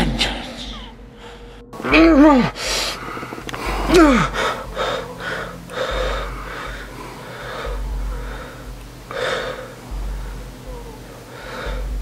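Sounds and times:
man crying out: 0:01.8 - 0:02.6, 0:03.6 - 0:06.4.

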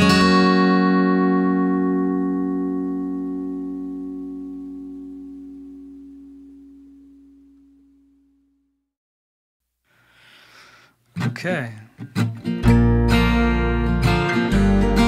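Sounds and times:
acoustic guitar chord ringing: 0:00.0 - 0:08.7, 0:12.2 - 0:15.0.

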